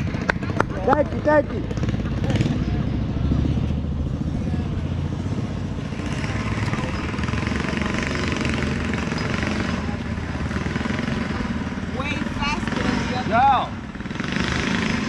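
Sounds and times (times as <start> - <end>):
small engine running steadily: 0.0 - 15.0.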